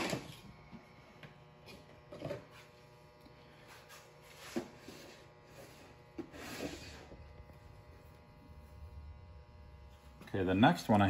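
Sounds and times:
faint mechanical hum: 0:00.0 - 0:11.0.

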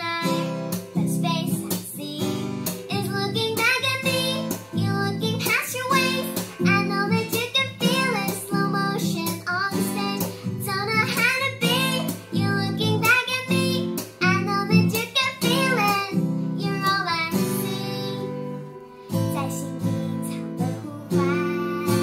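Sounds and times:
acoustic guitar strumming: 0:00.0 - 0:22.0
girl singing a pop ballad: 0:00.0 - 0:22.0.

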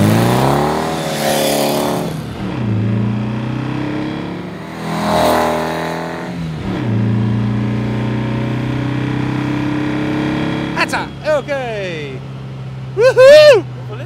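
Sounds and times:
car engine accelerating: 0:00.0 - 0:14.0.

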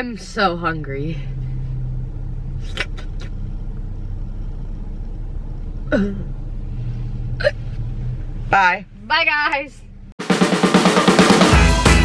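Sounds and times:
car engine idling: 0:00.0 - 0:10.2.

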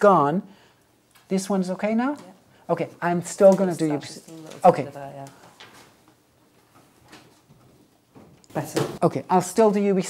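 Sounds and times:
person speaking: 0:00.0 - 0:00.5, 0:01.2 - 0:05.6, 0:08.5 - 0:10.0.

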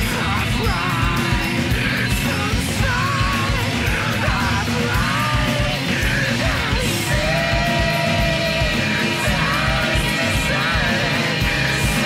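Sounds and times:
driving drums: 0:00.0 - 0:12.0
punk rock song: 0:00.0 - 0:12.0.

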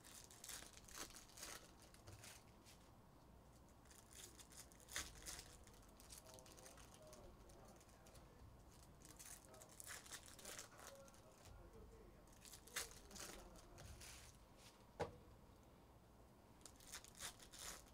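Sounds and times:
trading cards and wrappers crinkling: 0:00.0 - 0:02.5, 0:03.6 - 0:11.6, 0:12.3 - 0:14.4, 0:16.6 - 0:17.9.

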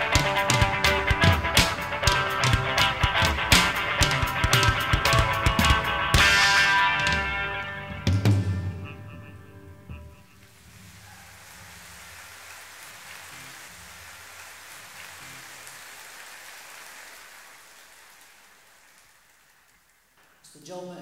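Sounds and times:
audience applause: 0:10.4 - 0:20.2.

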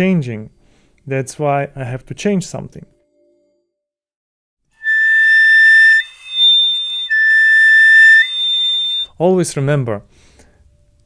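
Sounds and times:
piccolo held notes: 0:04.8 - 0:09.1.

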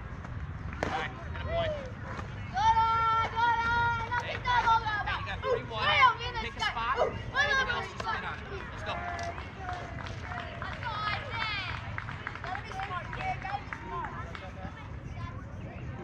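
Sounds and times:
children and onlookers chattering: 0:01.2 - 0:16.0.

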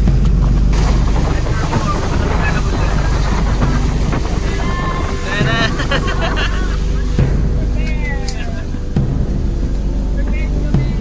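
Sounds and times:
boat motor rumble: 0:00.0 - 0:11.0
water: 0:00.0 - 0:11.0
wind rushing over microphone: 0:00.0 - 0:11.0
person's voice: 0:01.0 - 0:08.8, 0:10.0 - 0:11.0.

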